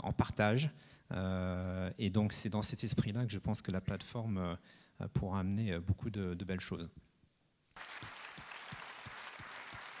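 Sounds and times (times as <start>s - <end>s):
audience applause: 7.8s - 10.0s
nearby person clapping: 7.8s - 10.0s.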